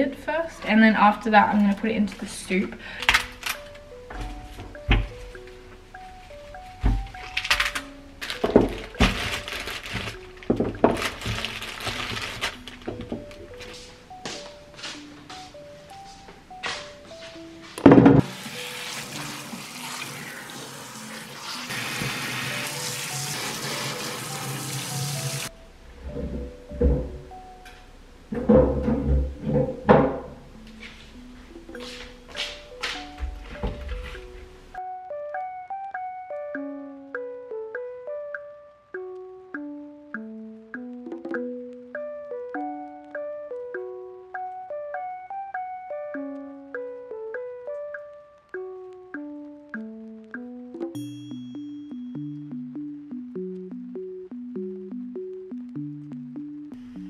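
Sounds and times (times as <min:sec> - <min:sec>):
soft background music: 0:00.0 - 0:57.0
tap water running into sink: 0:18.2 - 0:25.5.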